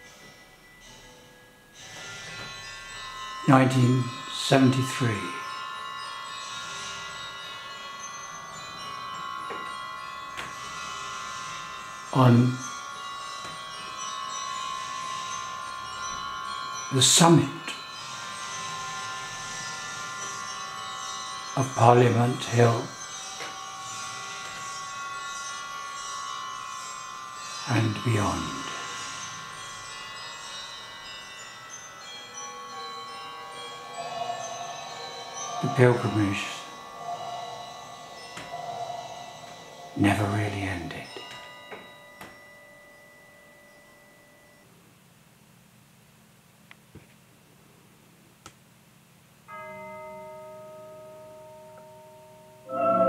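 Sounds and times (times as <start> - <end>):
high electrical whine: 0.0 - 45.6, 51.4 - 53.0
soft chiming bell-like music: 0.0 - 46.6, 47.3 - 53.0.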